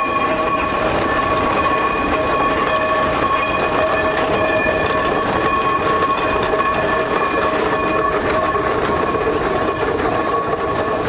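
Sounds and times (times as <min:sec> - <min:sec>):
locomotives rumbling and clanking: 0:00.0 - 0:11.0
steam locomotive whistles: 0:00.0 - 0:11.0.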